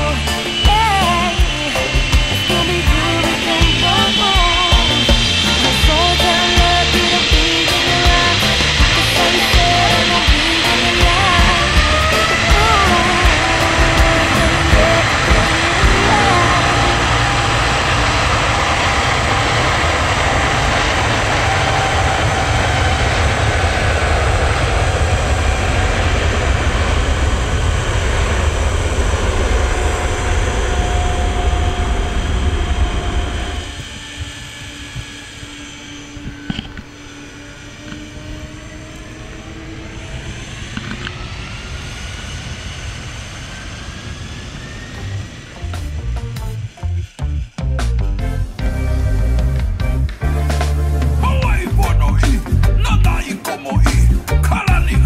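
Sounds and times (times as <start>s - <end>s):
music: 0.0s - 18.1s, 45.1s - 55.0s
zipline trolley whirring on cable: 0.0s - 55.0s.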